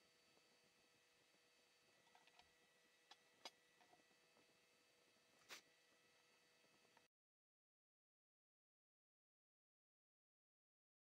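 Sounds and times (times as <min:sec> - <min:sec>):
faint clicks of handling metal parts: 0:02.0 - 0:02.5.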